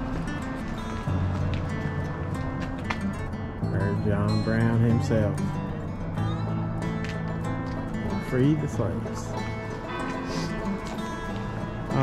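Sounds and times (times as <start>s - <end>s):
church bells ringing: 7.6s - 12.0s.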